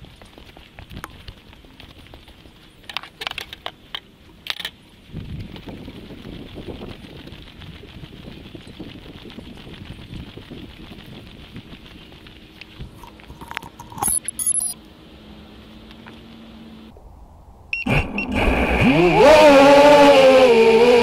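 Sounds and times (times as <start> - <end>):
propeller wash and wind: 0.0 - 14.1
drone motors whirring: 13.1 - 14.8
high electronic beeps: 13.9 - 14.8.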